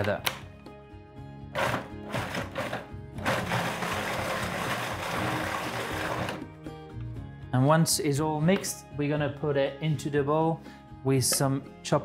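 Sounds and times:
food processor whizzing: 0:01.6 - 0:06.5.

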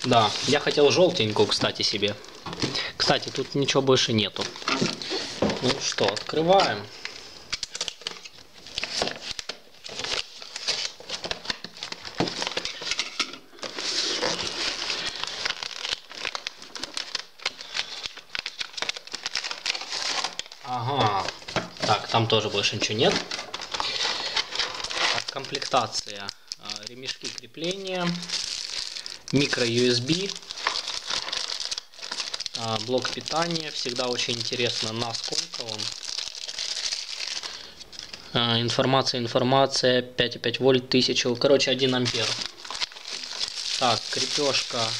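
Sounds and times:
packaging crinkling and rustling: 0:00.0 - 0:38.3, 0:41.8 - 0:44.9.

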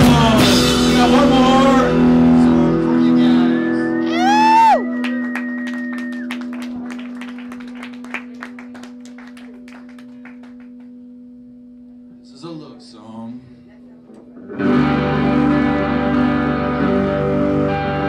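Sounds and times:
person whooping: 0:04.0 - 0:06.5
audience clapping: 0:04.9 - 0:11.1.

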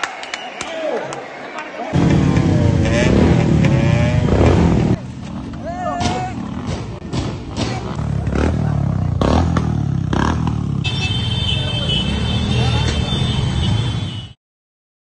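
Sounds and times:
motorcycle and scooter engines: 0:01.9 - 0:14.4
scattered voices: 0:04.9 - 0:09.5.

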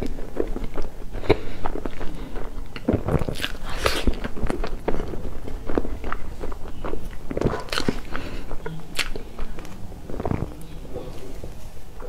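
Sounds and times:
wet mouth clicks and smacks: 0:00.0 - 0:10.4
close chewing of cake: 0:00.0 - 0:12.0.

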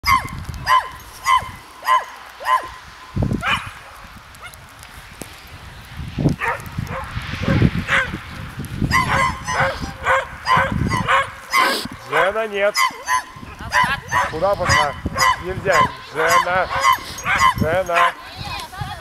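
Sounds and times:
dog barking: 0:00.0 - 0:02.8, 0:03.4 - 0:03.7, 0:06.4 - 0:08.1, 0:08.9 - 0:18.2.

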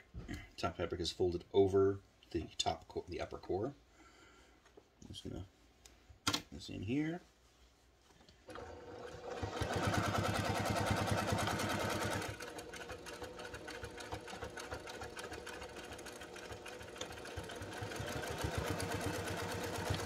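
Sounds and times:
sewing machine stitching fabric: 0:08.5 - 0:20.0.

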